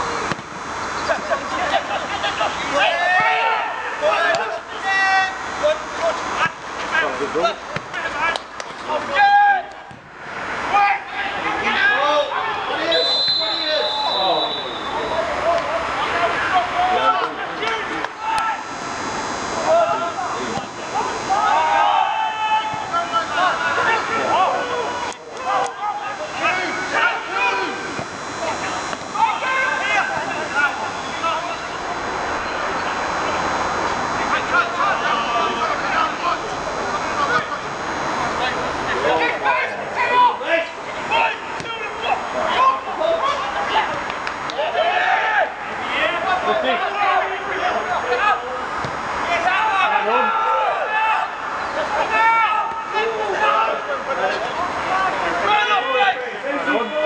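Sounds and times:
footballers shouting: 1.0s - 57.0s.

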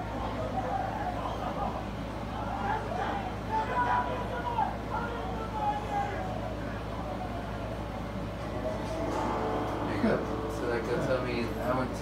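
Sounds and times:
steady low hum: 6.5s - 12.0s
music: 8.4s - 12.0s.

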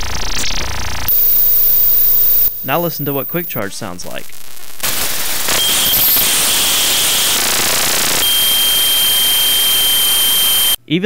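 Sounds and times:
thin high whines: 1.1s - 4.0s, 5.4s - 10.8s
electromagnetic interference hiss: 1.1s - 10.8s.

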